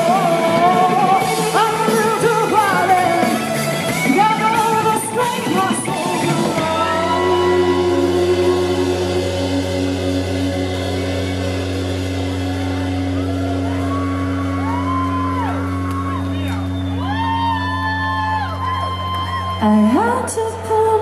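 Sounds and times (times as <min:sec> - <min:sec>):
person singing gliding notes: 0:00.0 - 0:14.7
band holding a chord: 0:00.0 - 0:19.7.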